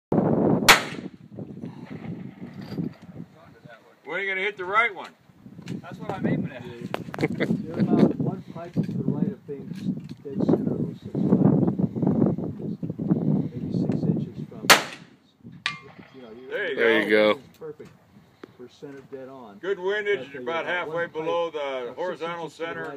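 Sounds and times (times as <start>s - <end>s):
gunshot with rumbling echo: 0.6s - 3.2s, 14.7s - 16.4s
bullet ringing on steel target: 15.7s - 16.2s.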